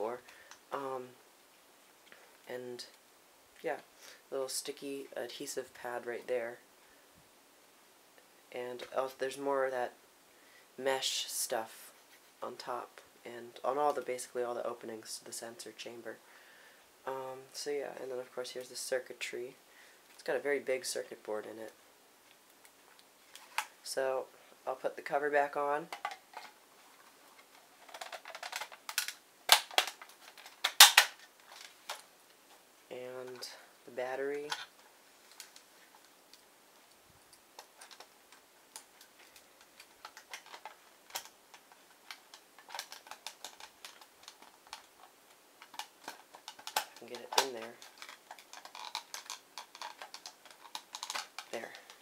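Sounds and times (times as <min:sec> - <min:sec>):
sharp clicks onto clips: 0:27.4 - 0:32.0, 0:37.3 - 0:52.0.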